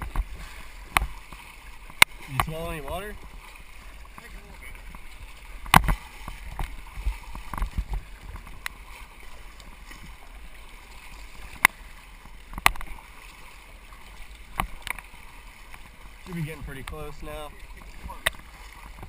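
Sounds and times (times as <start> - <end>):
kayak paddle strokes in water: 0.0 - 19.0
moving water wash: 0.0 - 19.0.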